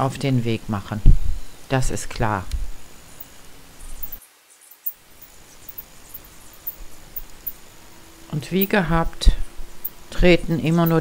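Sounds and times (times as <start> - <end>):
background hiss: 0.0 - 11.0
steady high-pitched tone: 3.2 - 4.2
tiny high ticks: 3.9 - 7.6.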